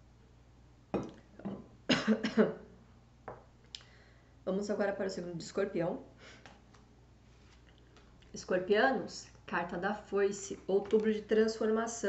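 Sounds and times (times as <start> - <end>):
woman clearing her throat: 1.9 - 2.6
woman coughing: 1.9 - 2.6.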